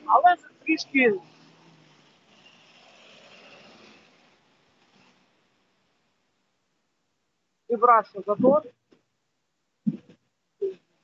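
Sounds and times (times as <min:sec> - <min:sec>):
faint road traffic hiss: 0:00.0 - 0:11.0.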